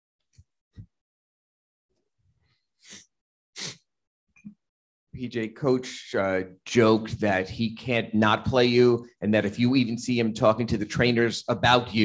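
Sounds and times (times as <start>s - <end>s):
man's nasal exhalation bursts: 2.8s - 3.9s.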